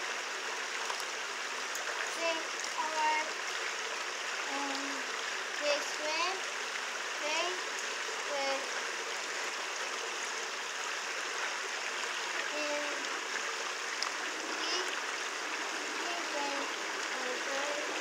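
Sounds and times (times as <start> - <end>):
running water rushing: 0.0 - 18.0
background voices: 2.0 - 3.3, 4.5 - 6.4, 7.2 - 7.6, 12.3 - 13.1, 14.3 - 15.0, 15.8 - 18.0.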